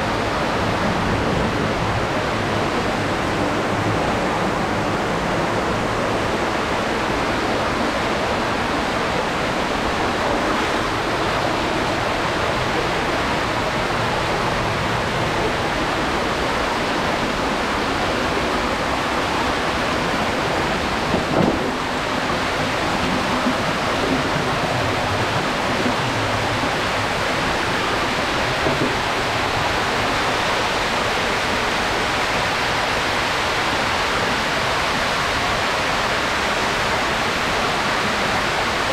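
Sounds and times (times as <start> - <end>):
stream rushing over rocks: 0.0 - 38.9.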